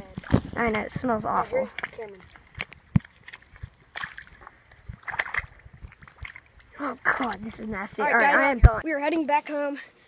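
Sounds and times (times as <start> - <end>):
feet squelching in wet mud: 0.0 - 7.6.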